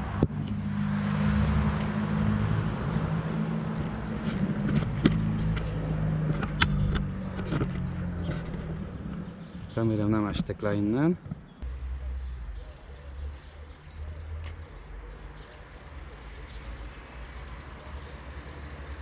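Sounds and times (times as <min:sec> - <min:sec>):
car passing: 0:00.0 - 0:08.8.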